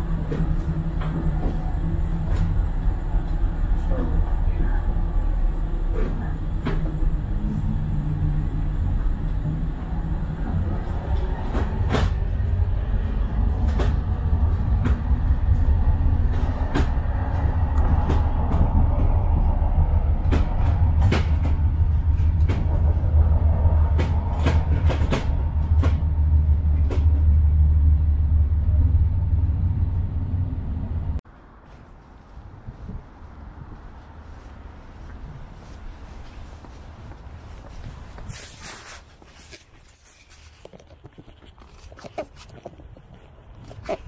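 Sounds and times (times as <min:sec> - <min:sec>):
transit vehicle rumble: 0:00.0 - 0:44.0.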